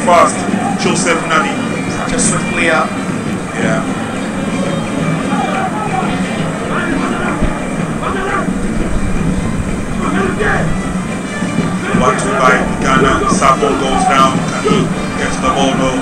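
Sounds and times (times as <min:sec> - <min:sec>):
faint voices: 0:00.0 - 0:16.0
football match broadcast noise: 0:00.0 - 0:16.0.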